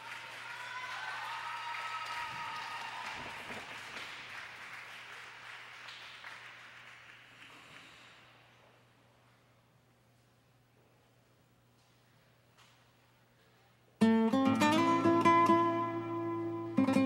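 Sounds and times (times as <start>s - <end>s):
high cheers: 0.0s - 4.2s
audience applauding: 0.0s - 8.4s.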